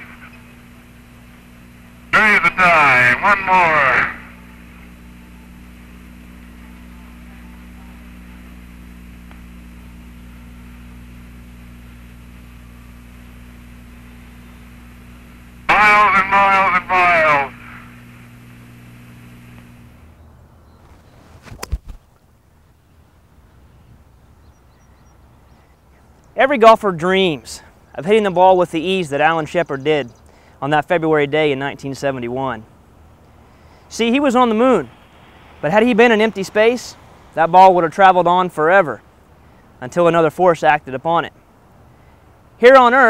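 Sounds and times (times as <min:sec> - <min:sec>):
voice over radio: 0:00.0 - 0:00.8, 0:02.1 - 0:09.2, 0:13.9 - 0:19.9, 0:33.9 - 0:39.0
radio hiss and hum: 0:00.0 - 0:20.2, 0:25.5 - 0:43.0.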